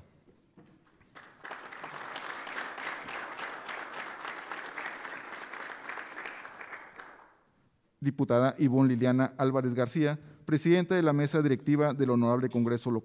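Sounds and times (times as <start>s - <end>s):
audience applauding: 1.1s - 7.4s.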